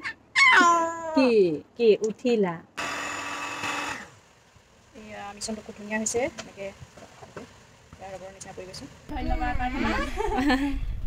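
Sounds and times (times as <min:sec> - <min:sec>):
electric hand mixer beating batter: 0:02.8 - 0:04.1.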